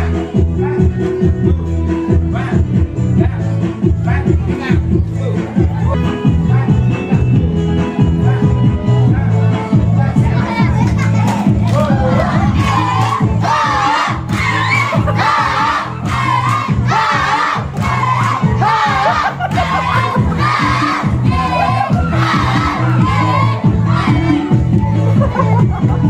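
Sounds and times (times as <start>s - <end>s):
dance music with bass line: 0.0s - 26.0s
crowd chanting in rhythm: 8.0s - 26.0s.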